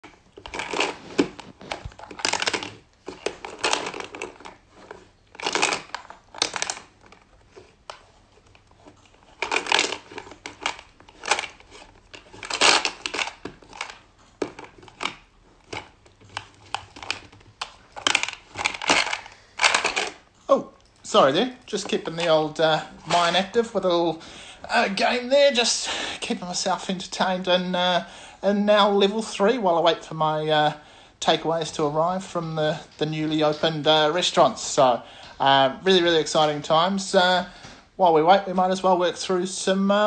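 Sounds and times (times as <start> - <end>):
plastic shapes rattling in a ball: 0.0 - 20.3, 21.0 - 24.1.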